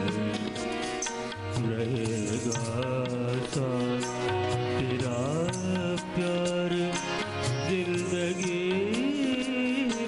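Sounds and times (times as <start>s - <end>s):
instrumental accompaniment: 0.0s - 10.0s
man singing long bending notes: 0.0s - 10.0s
percussion strokes: 0.0s - 10.0s.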